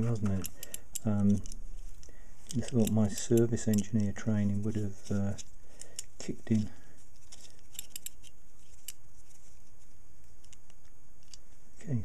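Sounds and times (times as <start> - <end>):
screwdriver clicking and scraping: 0.0 - 9.4, 10.4 - 11.4.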